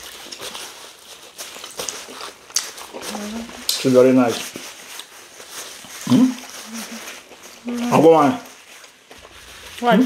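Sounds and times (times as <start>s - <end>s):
wet chewing and lip smacks: 0.0s - 3.9s.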